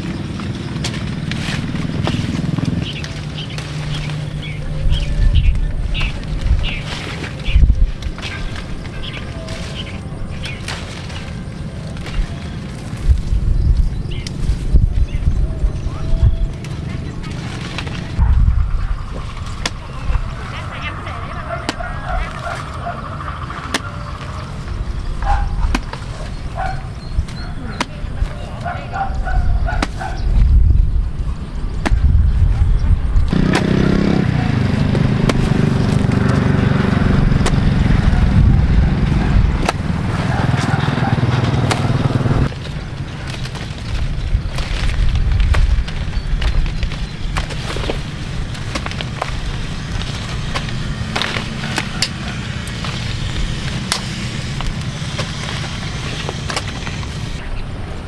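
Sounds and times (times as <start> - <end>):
hoe chopping dry soil: 0.0 - 4.6, 19.3 - 20.3, 25.2 - 26.4, 29.6 - 30.2, 31.8 - 32.2, 33.3 - 57.4
steady low drone: 0.0 - 58.0
wind rumble on microphone: 0.0 - 58.0.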